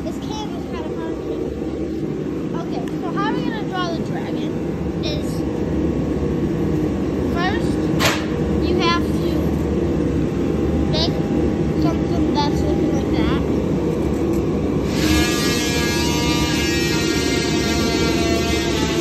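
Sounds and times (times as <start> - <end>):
high steady whine: 0.0 - 19.0
machinery hum and rumble: 0.0 - 19.0.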